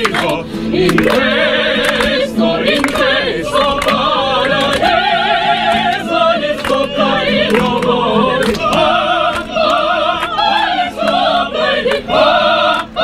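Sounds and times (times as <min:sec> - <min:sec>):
operatic singing by several voices: 0:00.0 - 0:13.0.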